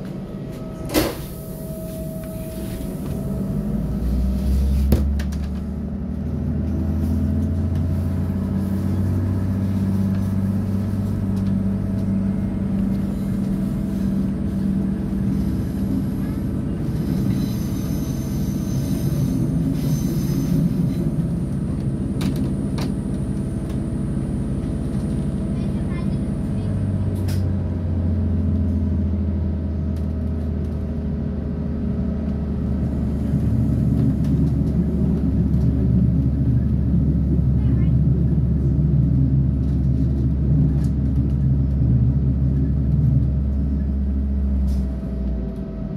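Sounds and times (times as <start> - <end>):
diesel engine humming: 0.0 - 45.9
train wheels rumbling on track: 0.0 - 45.9.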